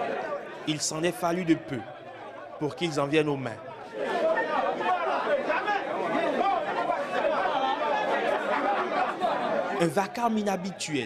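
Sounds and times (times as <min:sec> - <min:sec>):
crowd arguing heatedly: 0:00.0 - 0:11.0.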